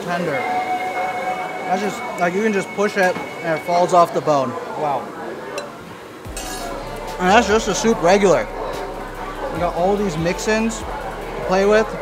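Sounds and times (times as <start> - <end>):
low chatter: 0.0 - 12.0
metal spoon clinking on bowl: 6.3 - 6.8.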